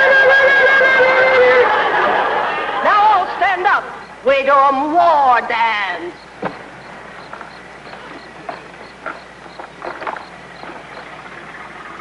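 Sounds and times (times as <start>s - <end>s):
crickets chirping: 5.4s - 12.0s.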